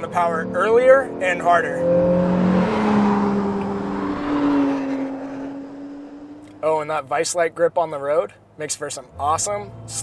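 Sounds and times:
sports car engine driving past: 0.1 - 6.6.

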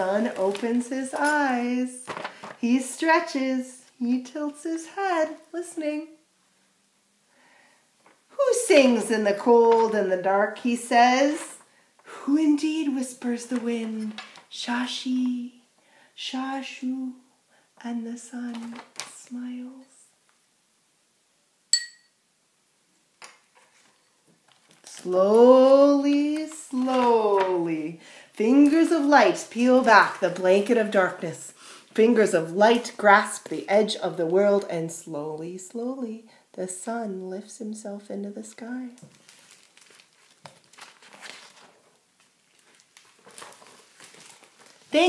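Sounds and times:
bright ringing percussion clink: 21.7 - 22.2.

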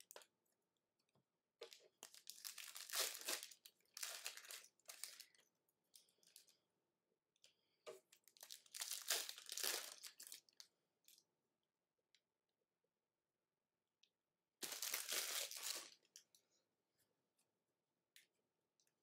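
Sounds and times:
foil wrappers crinkling and tearing: 2.0 - 5.4, 8.3 - 10.6, 14.6 - 16.1.

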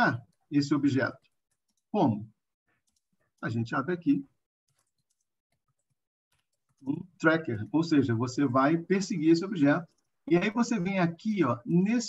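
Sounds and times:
man speaking: 0.0 - 1.2, 3.4 - 4.3, 6.9 - 12.0.

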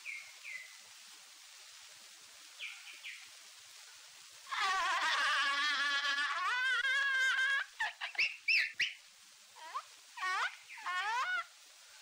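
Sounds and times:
man's falsetto squeal: 4.5 - 8.3, 9.6 - 11.5.

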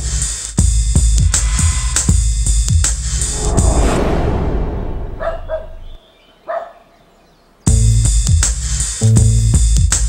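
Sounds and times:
bass-heavy music: 0.0 - 3.7, 7.7 - 10.0
animal barking calls: 6.4 - 7.0.

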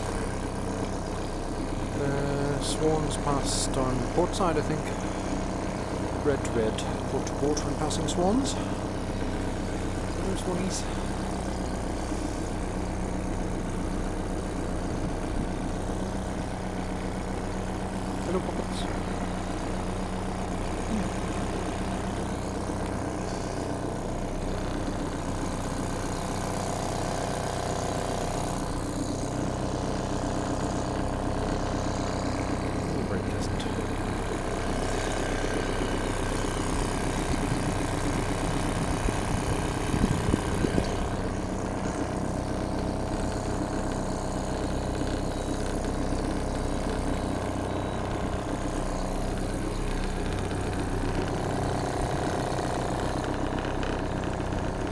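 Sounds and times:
two-stroke outboard motor running: 0.0 - 54.9.

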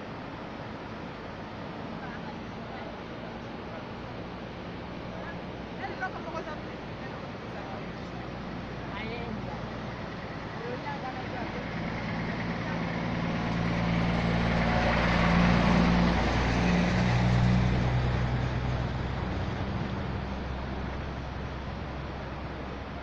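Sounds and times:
vehicle driving past: 9.7 - 23.0.

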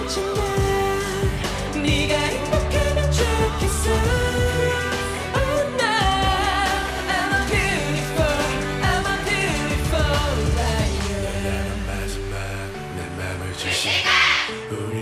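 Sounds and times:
backing track with bass and percussion: 0.0 - 12.3
male voice singing pop song: 0.0 - 15.0.

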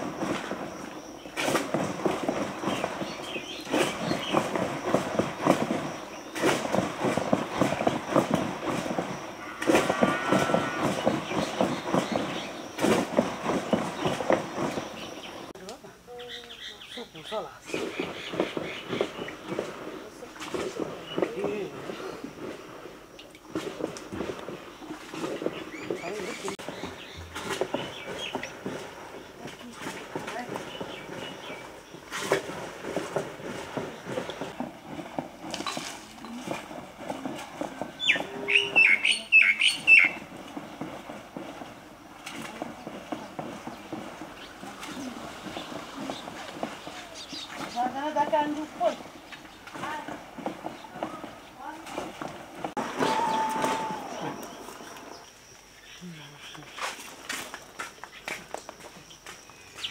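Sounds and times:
small bird chirping: 37.9 - 40.3, 44.4 - 49.7.

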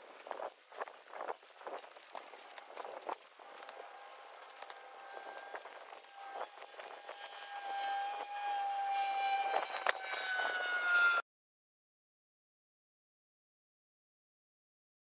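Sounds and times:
pitched motor drone: 2.2 - 11.2.

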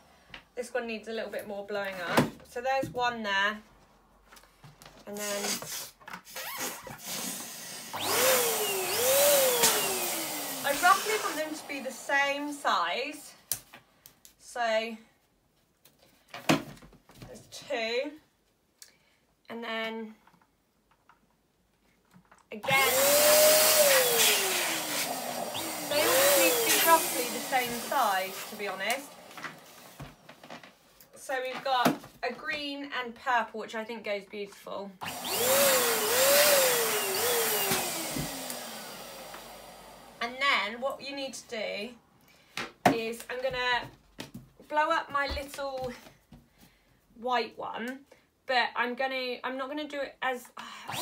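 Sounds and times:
balloon squealing whine: 5.2 - 7.3.

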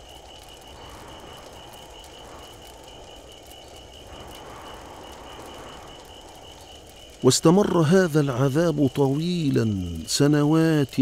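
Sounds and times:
low rumble: 0.0 - 9.2
insect-like pulsing chirp: 0.0 - 11.0.

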